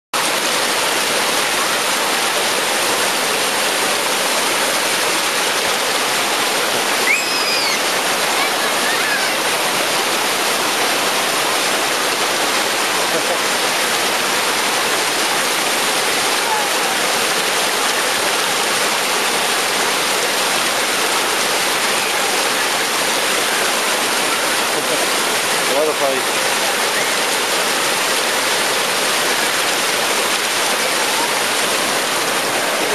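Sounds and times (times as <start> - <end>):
water rushing over rock ledges: 0.2 - 32.9.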